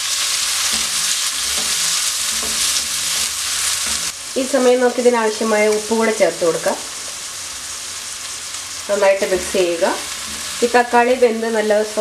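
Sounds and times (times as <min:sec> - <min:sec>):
food sizzling in a wok: 0:00.0 - 0:12.0
wooden spatula stirring: 0:00.6 - 0:04.2.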